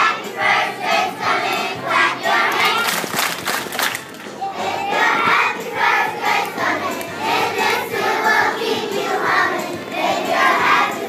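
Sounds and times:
children singing in unison: 0:00.0 - 0:02.9, 0:04.4 - 0:11.0.

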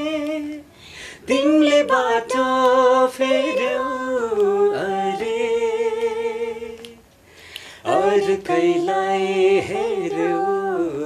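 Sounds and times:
person breathing: 0:00.7 - 0:01.3, 0:07.2 - 0:07.9
person singing unaccompanied: 0:01.3 - 0:07.1, 0:07.8 - 0:11.0.

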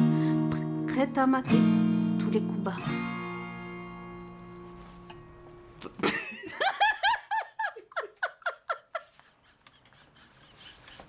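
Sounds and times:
acoustic guitar chord ringing: 0:00.0 - 0:05.8.

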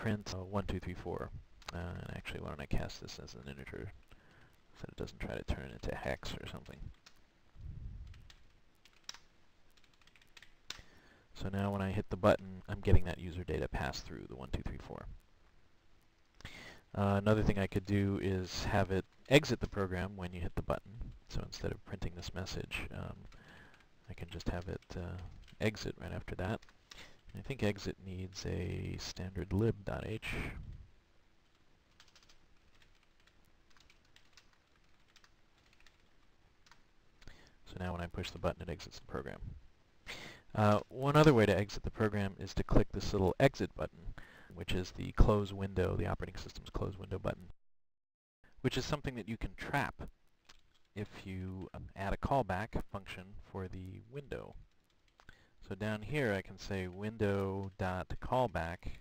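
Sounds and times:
computer keyboard typing: 0:08.0 - 0:10.8, 0:22.2 - 0:27.6, 0:31.4 - 0:37.4, 0:54.7 - 0:55.4.

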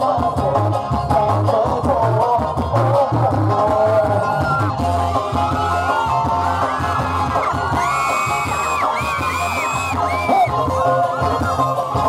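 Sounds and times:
loud concert music: 0:00.0 - 0:12.0.

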